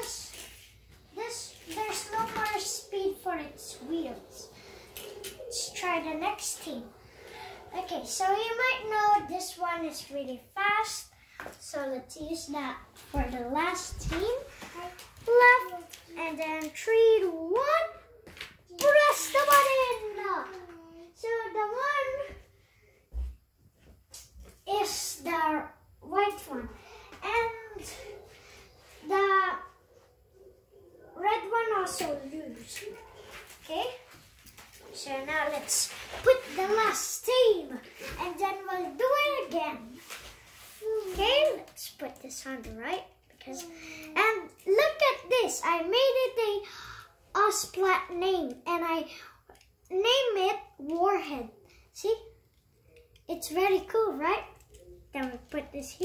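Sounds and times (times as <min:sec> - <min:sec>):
child speaking indistinctly: 0:00.0 - 0:00.4, 0:01.1 - 0:22.4, 0:24.6 - 0:29.9, 0:30.7 - 0:34.1, 0:34.8 - 0:40.0, 0:40.8 - 0:49.2, 0:49.9 - 0:52.3, 0:53.3 - 0:56.0.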